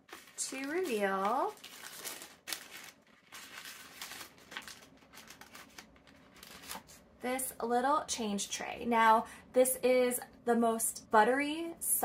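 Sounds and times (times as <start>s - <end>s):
tissue paper rustling: 0.0s - 7.0s.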